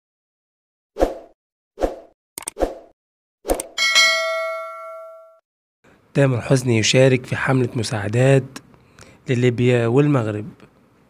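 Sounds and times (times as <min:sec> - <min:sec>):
bright bell-like ding: 0:03.8 - 0:05.4.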